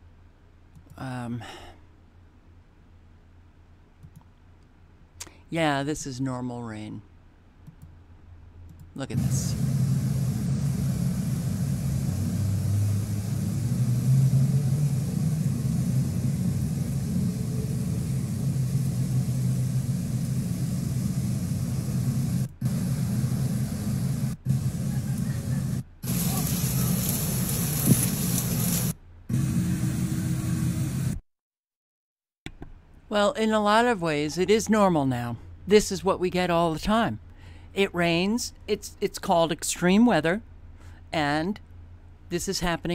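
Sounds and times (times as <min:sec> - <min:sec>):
heavy rain: 0:09.2 - 0:22.5, 0:26.0 - 0:28.9.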